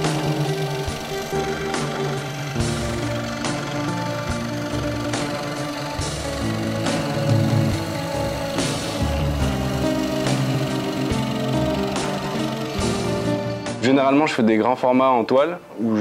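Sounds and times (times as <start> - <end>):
background music with steady beat: 0.0 - 16.0.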